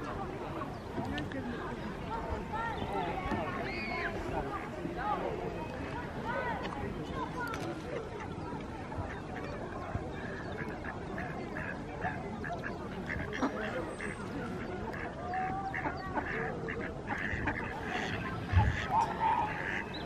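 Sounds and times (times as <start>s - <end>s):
faint background voices: 0.0s - 20.0s
ducks quacking: 9.0s - 20.0s.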